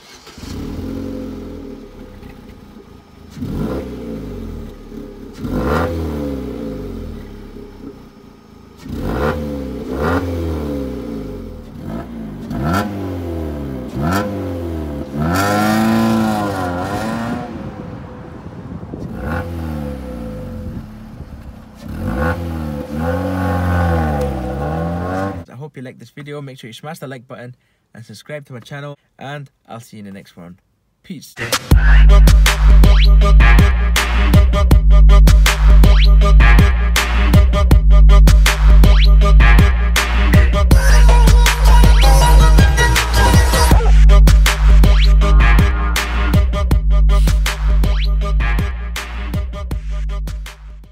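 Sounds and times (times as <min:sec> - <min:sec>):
car engine idling and revving: 0:00.0 - 0:25.5, 0:31.5 - 0:50.9.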